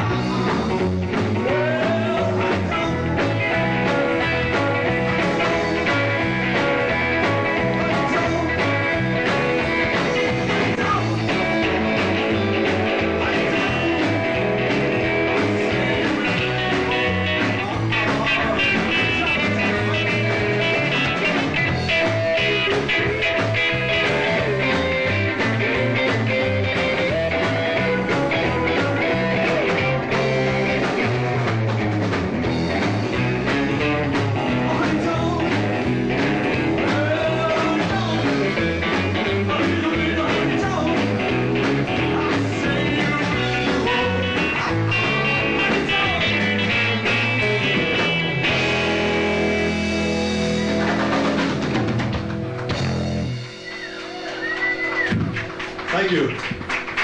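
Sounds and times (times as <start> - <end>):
bass guitar: 0.0 - 57.0
drums: 0.0 - 57.0
electric guitar lead with bent notes: 0.0 - 57.0
live rock band playing: 0.0 - 57.0.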